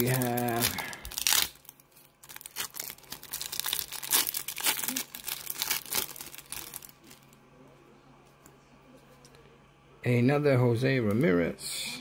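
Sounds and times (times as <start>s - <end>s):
plastic wrapper tearing and crinkling: 0.0s - 7.4s.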